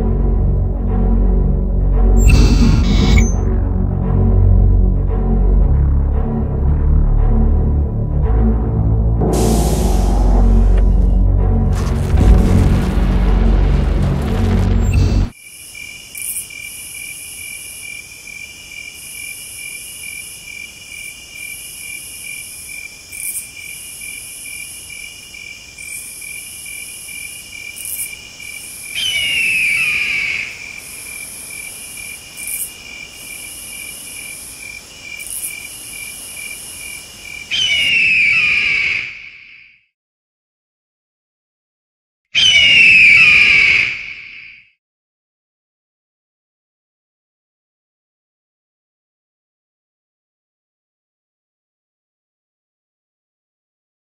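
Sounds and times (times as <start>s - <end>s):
crickets chirping: 14.9s - 38.0s
bird of prey screaming: 37.5s - 39.8s, 42.4s - 44.7s.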